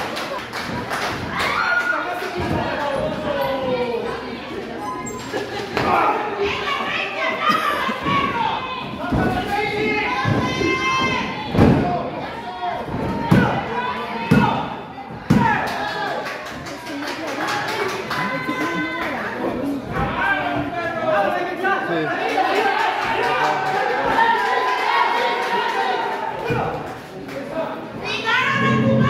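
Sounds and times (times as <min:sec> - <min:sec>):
crowd voices and shouts: 0:00.0 - 0:29.0.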